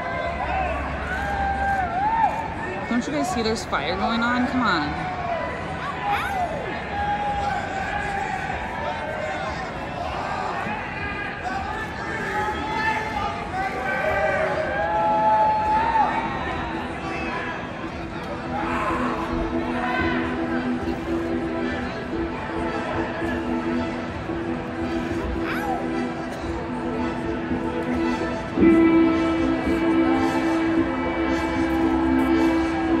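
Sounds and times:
crowd talking: 0.0s - 33.0s
bass: 18.5s - 33.0s
live band sustained chord: 26.0s - 33.0s.

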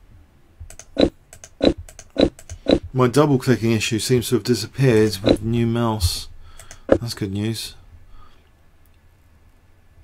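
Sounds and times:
computer mouse clicks: 0.6s - 2.9s, 6.6s - 7.0s.

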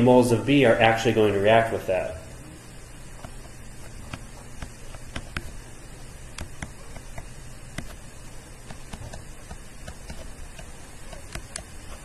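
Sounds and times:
room noise: 0.0s - 12.0s
stylus tapping on tablet screen: 3.2s - 5.6s, 6.3s - 8.0s, 8.6s - 11.7s.

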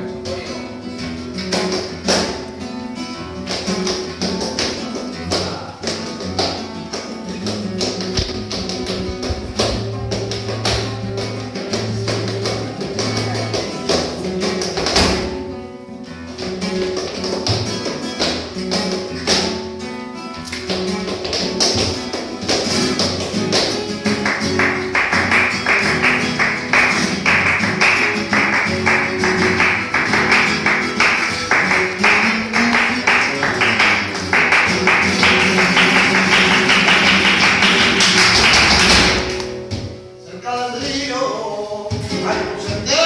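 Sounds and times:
flamenco guitar playing: 0.0s - 43.0s
rhythmic hand-clapping: 0.1s - 2.7s, 3.4s - 15.5s, 16.1s - 40.1s.

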